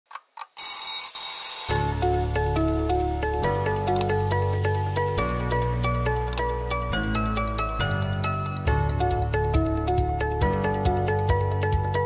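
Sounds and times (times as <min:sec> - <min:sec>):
alarm clock bell ringing: 0:00.6 - 0:02.0.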